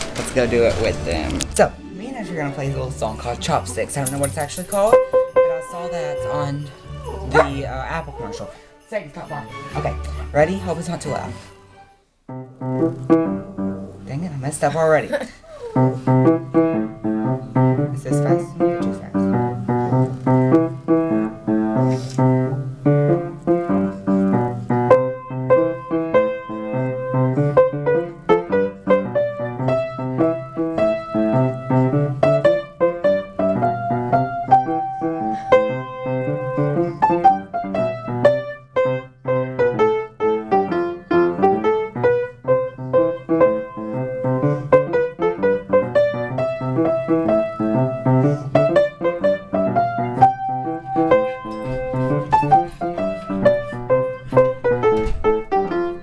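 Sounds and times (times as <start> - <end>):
piano duet: 0.0 - 56.0.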